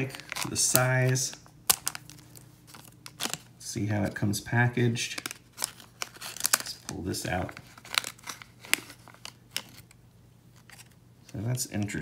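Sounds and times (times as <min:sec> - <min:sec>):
foil pouch crinkling: 0:00.0 - 0:03.5, 0:05.0 - 0:12.0.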